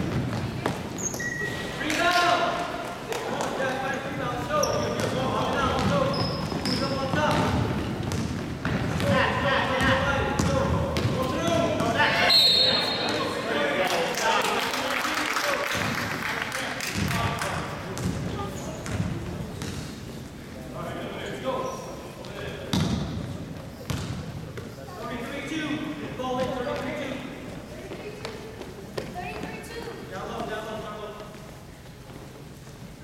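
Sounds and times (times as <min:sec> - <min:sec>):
sneakers squeaking: 0:00.0 - 0:13.5, 0:17.9 - 0:20.5, 0:21.1 - 0:25.2
echoing voices in gym: 0:00.0 - 0:33.0
basketball bouncing on wood floor: 0:05.0 - 0:11.9, 0:18.0 - 0:19.8, 0:23.9 - 0:24.2.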